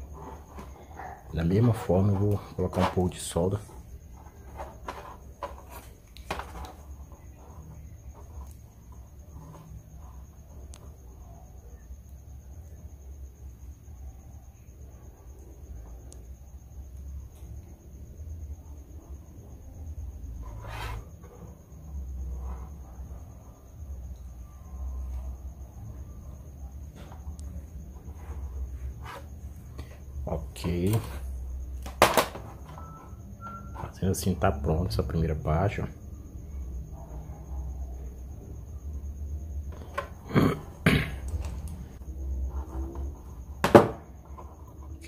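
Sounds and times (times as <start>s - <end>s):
thin high whine: 32.4s - 34.6s.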